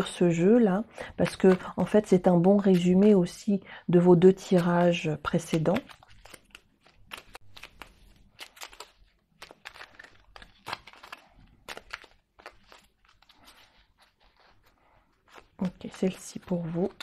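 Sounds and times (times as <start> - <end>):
cards being shuffled: 0.0 - 3.5, 4.2 - 17.0.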